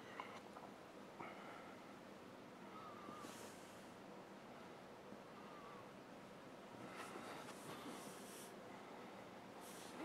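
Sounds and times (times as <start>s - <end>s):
faint breath: 1.2s - 2.0s, 2.6s - 6.0s, 6.8s - 10.0s.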